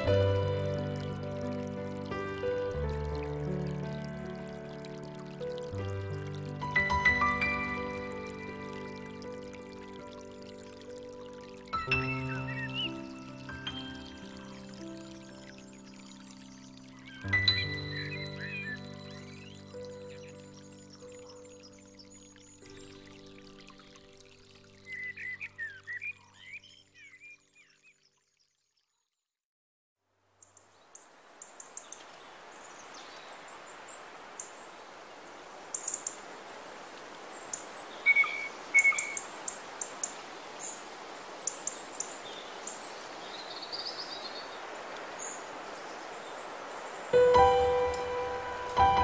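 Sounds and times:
stream rushing over rocks: 0.0s - 19.4s, 31.1s - 49.0s
soft music: 0.0s - 26.8s, 47.0s - 49.0s
small birds chirping: 8.0s - 24.1s, 30.4s - 34.8s, 35.7s - 36.3s, 37.1s - 49.0s
bird-like chirps: 11.7s - 14.3s, 16.5s - 22.9s, 37.4s - 40.8s.

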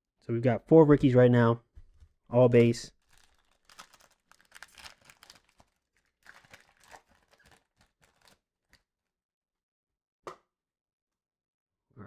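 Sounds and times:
foil wrapper tearing and crinkling: 2.9s - 8.8s.

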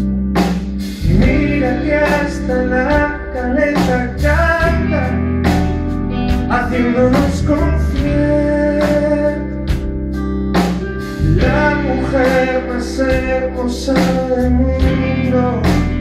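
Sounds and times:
live pop-rock band playing: 0.0s - 16.0s.

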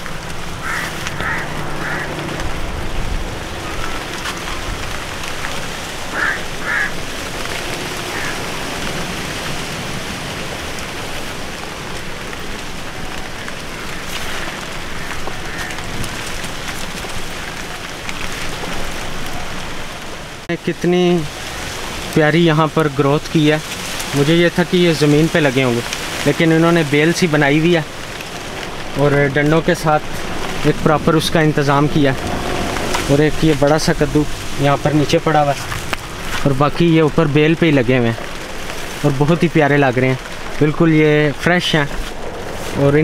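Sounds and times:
rain pattering on foliage: 0.0s - 43.0s
short animal calls: 0.6s - 2.4s, 6.1s - 7.0s.

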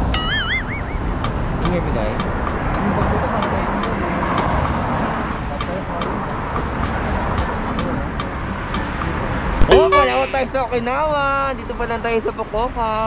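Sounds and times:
cars passing on a road: 0.0s - 13.0s
person shouting loudly: 9.7s - 10.4s.

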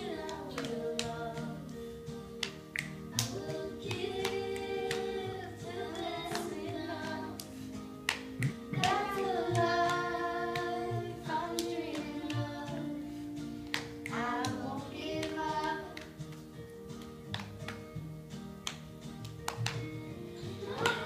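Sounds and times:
child singing along: 0.0s - 1.7s, 3.1s - 7.5s, 8.7s - 13.1s, 14.1s - 16.2s, 20.4s - 21.0s
children's song from tv: 0.0s - 18.0s, 19.5s - 21.0s
sharp hand claps: 0.2s - 1.5s, 2.3s - 5.2s, 5.9s - 10.9s, 11.5s - 12.8s, 13.6s - 14.6s, 15.2s - 21.0s.

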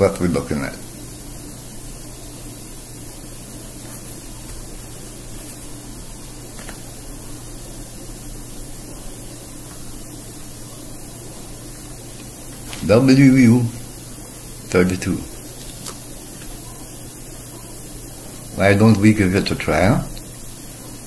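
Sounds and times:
faint low hum: 0.0s - 21.0s
steady hiss: 0.0s - 21.0s.

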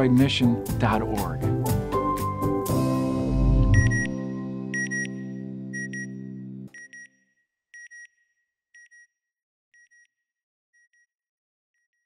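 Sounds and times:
sustained low synth chord: 2.7s - 6.7s
synthesized double beep: 3.7s - 4.2s.

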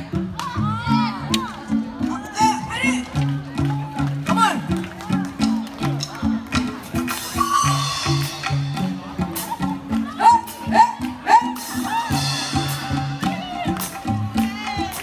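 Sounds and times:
congas: 0.0s - 15.0s
live band playing dance music: 0.0s - 15.0s
people's voices: 0.0s - 15.0s.

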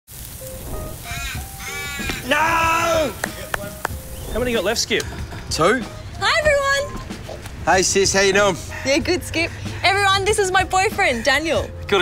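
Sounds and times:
caw-like bird calls: 0.9s - 3.2s, 10.7s - 11.7s.

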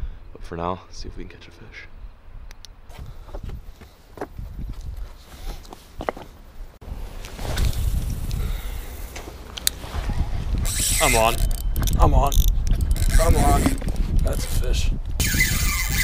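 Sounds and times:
footsteps on rocks: 2.9s - 6.4s
gear clicks and knocks: 10.7s - 14.4s.

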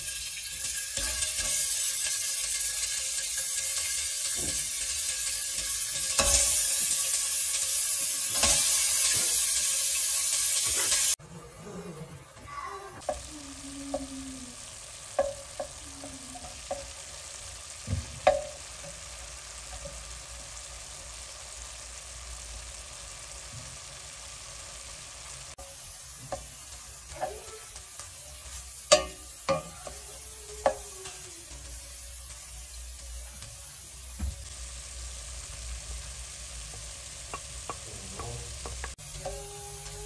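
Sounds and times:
meat sizzling in a pot: 0.0s - 11.2s, 13.0s - 40.0s
wooden spoon knocking and scraping pot: 15.1s - 17.1s, 17.8s - 19.1s.

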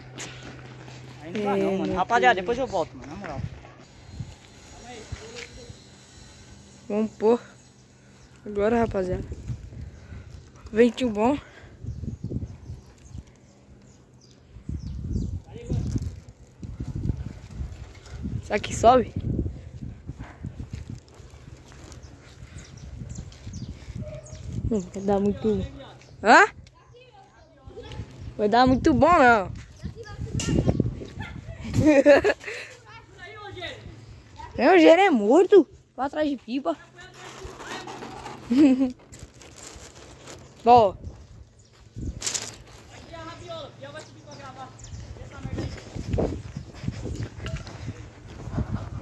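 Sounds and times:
wind buffeting microphone: 8.5s - 34.7s, 39.9s - 42.4s, 44.3s - 49.0s
person laughing: 31.2s - 32.8s, 38.5s - 39.0s
rustling handling noise: 36.9s - 44.1s.

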